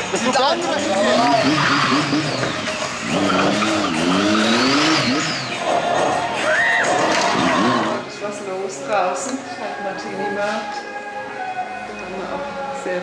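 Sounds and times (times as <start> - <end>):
motorcycle engine revving: 0.0 - 8.3
high tyre squeal: 0.7 - 8.1.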